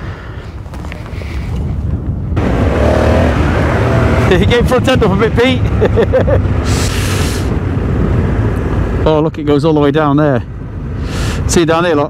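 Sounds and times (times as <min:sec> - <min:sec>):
wind noise on microphone: 0:00.0 - 0:05.7, 0:06.3 - 0:09.0
motorcycle engine rumble: 0:00.0 - 0:11.0.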